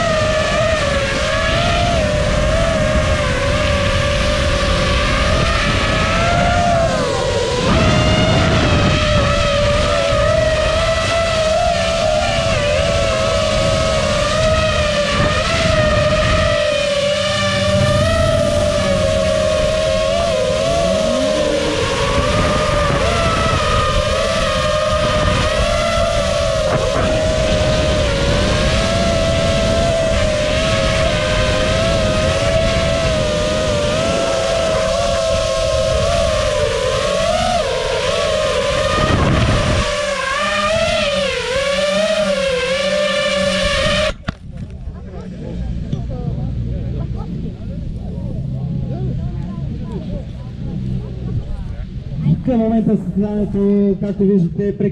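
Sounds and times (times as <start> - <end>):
quadcopter motors whining: 0.0 - 54.4.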